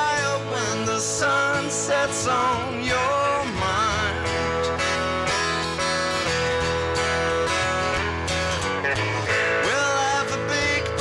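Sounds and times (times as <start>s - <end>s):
live band playing: 0.0s - 11.0s
strummed acoustic guitar: 0.0s - 11.0s.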